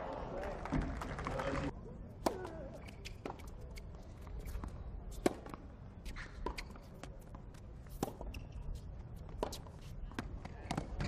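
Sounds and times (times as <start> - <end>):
tennis court ambience: 0.0 - 11.0
tennis ball struck by racket: 4.4 - 6.8, 7.9 - 8.4.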